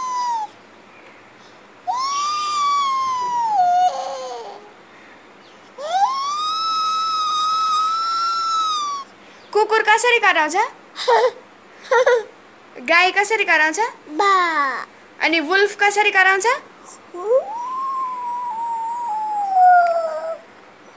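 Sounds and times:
toddler howling: 0.0 - 0.6, 1.9 - 4.7, 5.8 - 9.1, 17.2 - 20.5.

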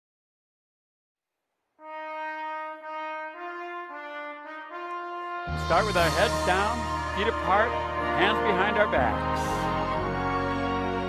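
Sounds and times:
brass fanfare: 1.8 - 11.0.

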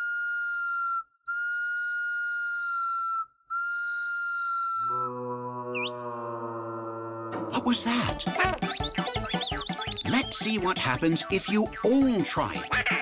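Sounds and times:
cartoon chick whistle tones: 0.0 - 5.1, 8.4 - 10.3.

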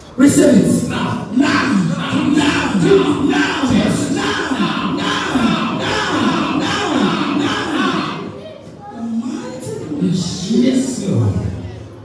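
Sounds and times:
congregation singing and shouting: 0.0 - 8.6
worship music: 0.2 - 8.3.

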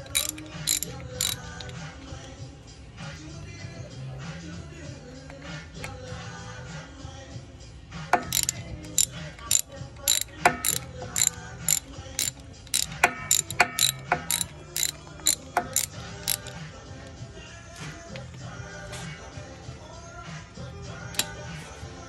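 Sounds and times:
ratchet wrench clicking: 0.0 - 2.3, 8.2 - 16.6, 21.2 - 21.4.

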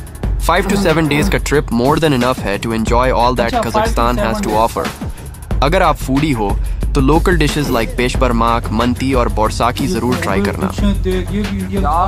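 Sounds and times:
narrator speaking: 0.5 - 1.6, 3.4 - 4.9, 7.4 - 8.2, 9.7 - 10.9
background music with low beat: 2.9 - 12.0.

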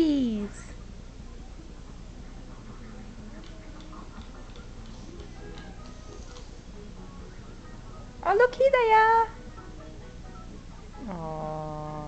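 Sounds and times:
light music from television: 0.0 - 12.0.

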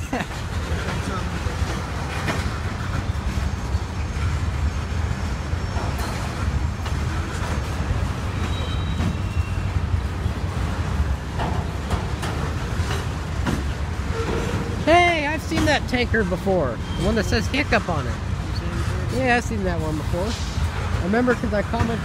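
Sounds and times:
train wheels rumbling: 0.0 - 22.0
wheels clacking over rail joints: 0.0 - 22.0.

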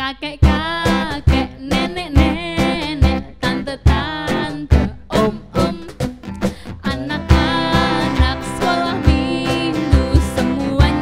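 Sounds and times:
woman singing into a microphone: 0.0 - 11.0
strummed acoustic guitar: 0.4 - 11.0.

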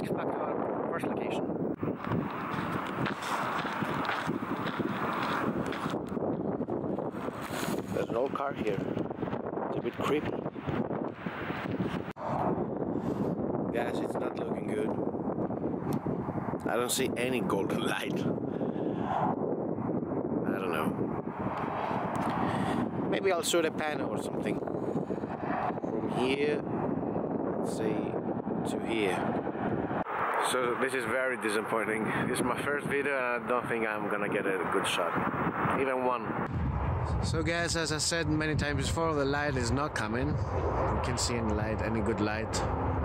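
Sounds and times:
wind buffeting microphone: 0.0 - 43.0
footsteps crunching on gravel: 2.0 - 6.2.

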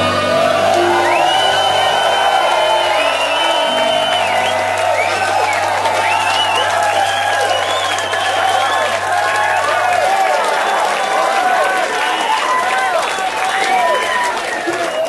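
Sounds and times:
audience applauding and cheering: 0.0 - 15.0
audience whistling: 0.0 - 15.0.

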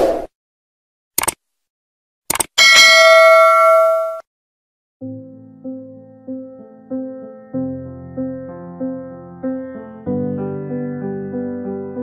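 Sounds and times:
notification bell ding: 2.6 - 4.2.

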